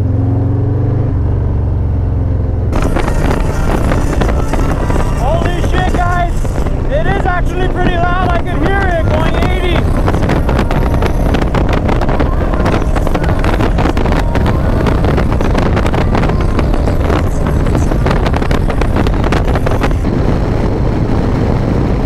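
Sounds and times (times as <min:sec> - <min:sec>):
motorcycle engine cruising: 0:00.0 - 0:22.0
wind buffeting microphone: 0:00.4 - 0:22.0.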